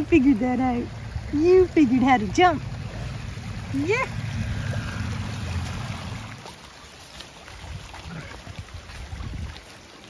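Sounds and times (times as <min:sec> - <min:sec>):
floodwater running: 0:00.0 - 0:10.0
wind rumble on microphone: 0:07.5 - 0:09.8.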